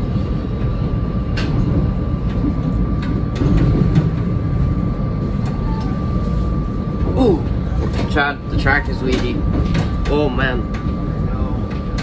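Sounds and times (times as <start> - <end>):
high electric hum: 0.0 - 12.0
train wheels rumbling on rail: 0.0 - 12.0.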